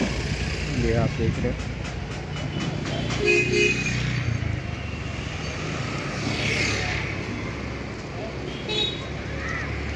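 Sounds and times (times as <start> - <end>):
road noise: 0.0 - 9.9
vehicle engine hum: 0.0 - 9.9.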